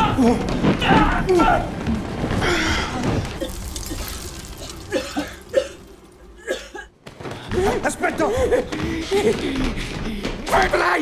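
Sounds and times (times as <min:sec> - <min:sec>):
rush of flame: 0:01.7 - 0:06.5.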